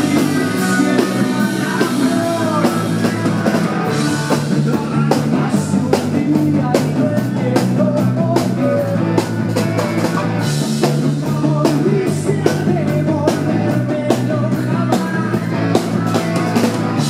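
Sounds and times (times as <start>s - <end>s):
live rock band playing: 0.0s - 17.0s
man singing: 0.0s - 17.0s.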